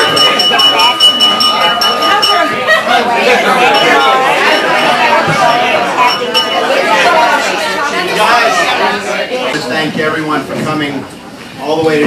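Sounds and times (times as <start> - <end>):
glasses clinking: 0.0 - 7.5
crowd chatter: 0.0 - 12.0.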